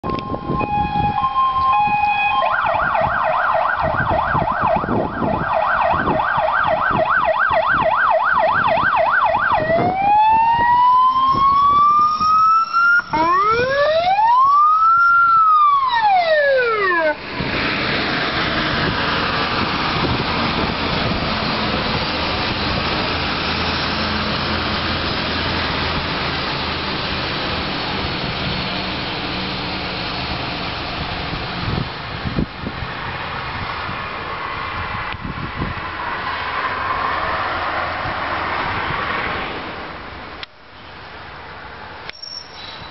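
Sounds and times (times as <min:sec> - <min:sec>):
fire engine siren: 0:00.0 - 0:32.4
road noise: 0:00.0 - 0:42.9
diesel truck engine: 0:09.3 - 0:40.5.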